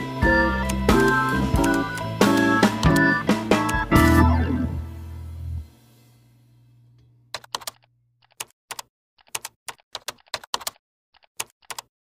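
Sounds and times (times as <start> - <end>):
keyboard typing clicks: 0.6 - 3.9, 7.3 - 11.9.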